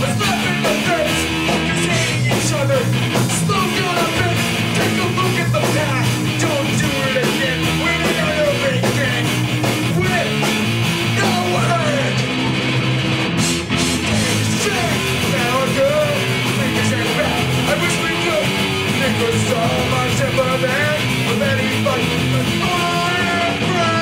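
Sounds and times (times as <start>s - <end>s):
person singing: 0.0s - 12.3s, 14.0s - 24.0s
rock band playing: 0.0s - 24.0s.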